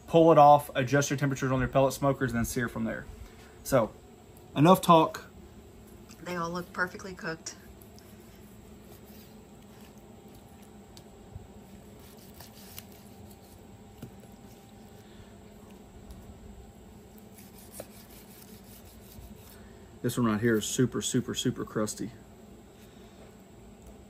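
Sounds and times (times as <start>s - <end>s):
low background hum: 0.0s - 24.0s
knife slicing on wooden board: 11.8s - 14.5s.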